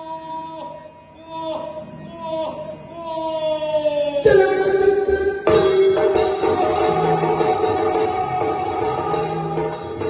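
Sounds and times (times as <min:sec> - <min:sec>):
drone on two pitches: 0:04.3 - 0:09.4
drum strokes: 0:04.3 - 0:10.0.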